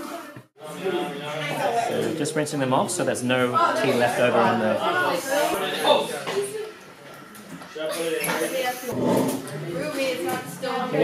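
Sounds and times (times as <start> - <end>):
indistinct voices talking: 0.9 - 11.0.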